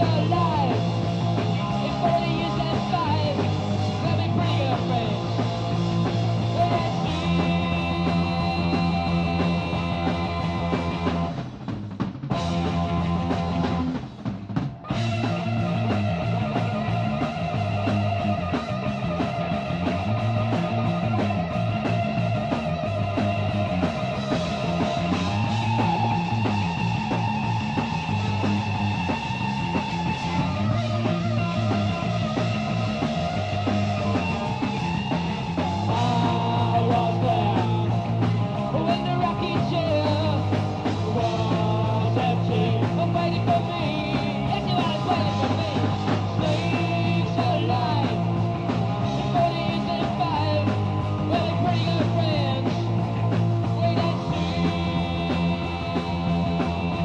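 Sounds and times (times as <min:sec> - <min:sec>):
punk rock band playing: 0:00.0 - 0:57.0.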